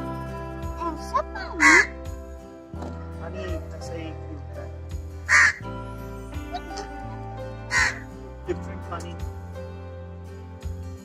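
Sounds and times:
background music with held notes: 0.0 - 11.0
loud bird calls: 1.6 - 1.9, 5.3 - 5.6, 7.7 - 8.1.

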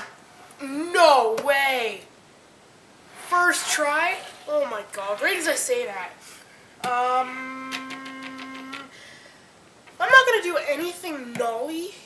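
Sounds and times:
person humming umm: 6.9 - 8.9.

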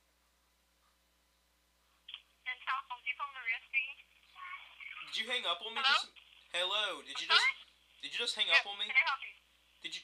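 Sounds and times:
voice over telephone line: 7.1 - 9.4.

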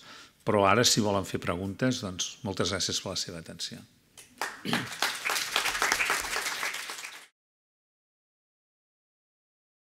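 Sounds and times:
audience applauding: 4.4 - 7.3.

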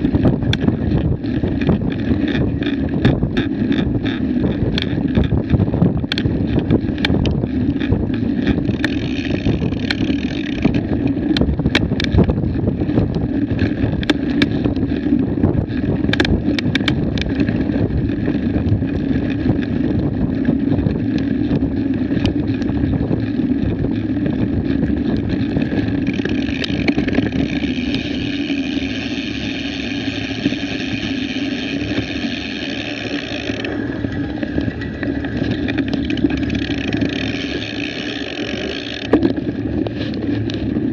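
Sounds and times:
bike clicks and rattles: 0.0 - 40.9
wind rumbling on microphone: 0.0 - 40.9.

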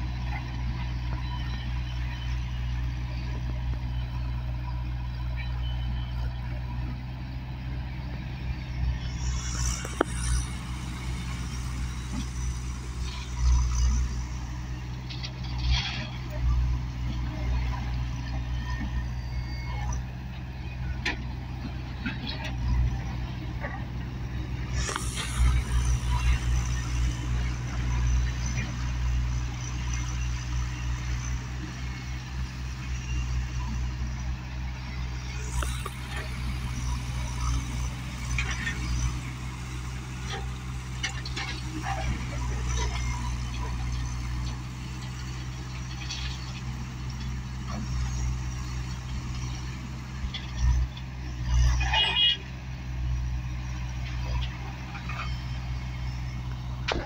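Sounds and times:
diesel engine rumbling: 0.0 - 57.0.

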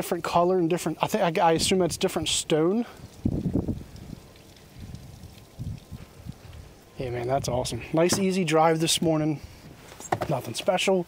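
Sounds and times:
wind buffeting microphone: 1.4 - 10.4.

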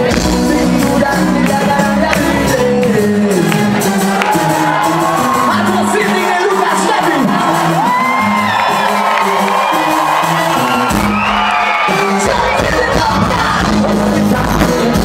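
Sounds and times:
live band music over pa: 0.0 - 15.0
audience whooping and cheering: 2.1 - 13.8.

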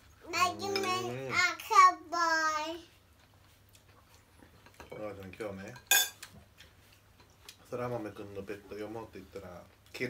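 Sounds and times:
utensils clinking against bowls: 4.6 - 6.3.

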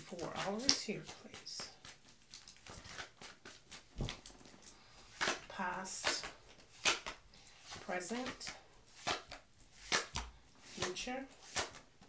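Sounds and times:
cards being shuffled: 0.1 - 12.0.

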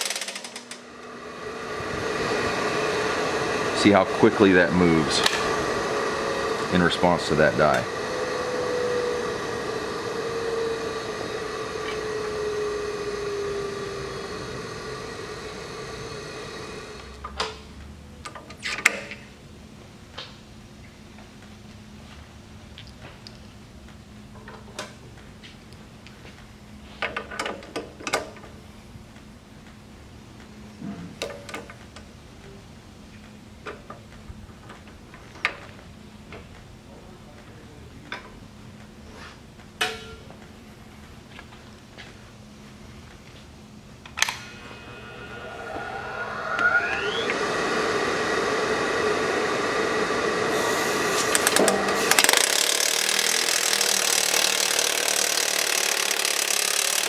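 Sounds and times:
machine hum sliding lower: 0.6 - 18.0, 40.5 - 54.5.

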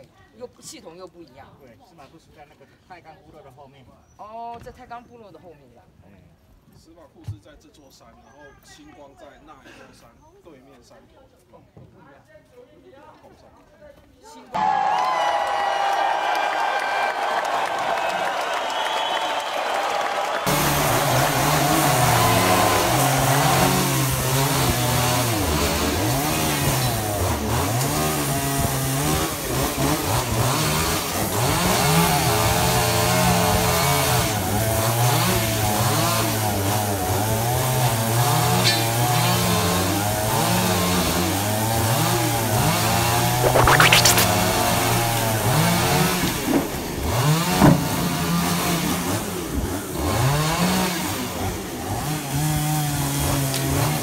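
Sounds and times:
chainsaw cutting wood: 20.5 - 31.9.

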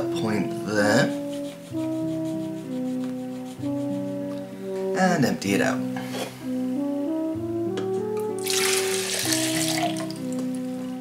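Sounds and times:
music with slow sustained notes: 0.0 - 11.0
water pouring out of horn: 8.4 - 10.2.

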